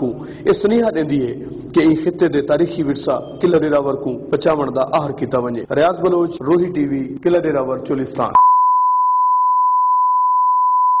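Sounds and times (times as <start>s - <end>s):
steady pure test tone: 8.4s - 11.0s.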